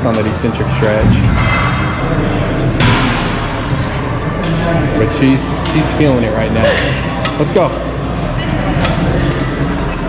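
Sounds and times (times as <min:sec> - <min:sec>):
music playing: 0:00.0 - 0:10.0.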